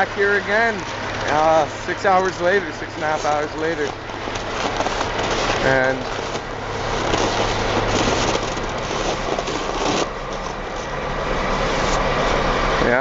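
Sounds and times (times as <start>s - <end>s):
diesel truck engine idling: 0.0s - 13.0s.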